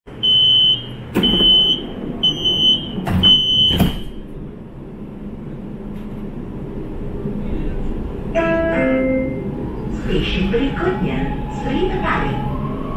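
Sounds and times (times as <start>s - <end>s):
standing train hum: 0.1s - 12.9s
door warning beeps: 0.2s - 4.2s
train doors sliding and thudding shut: 0.2s - 4.4s.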